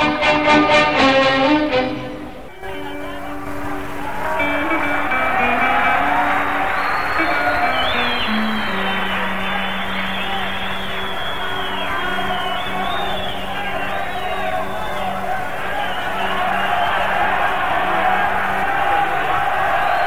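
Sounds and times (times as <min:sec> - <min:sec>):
orchestral strings melody: 0:00.0 - 0:19.3.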